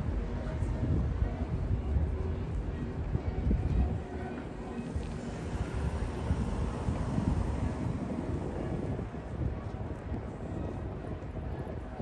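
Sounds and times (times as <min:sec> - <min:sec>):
outdoor city ambience rumble: 0:00.0 - 0:12.0.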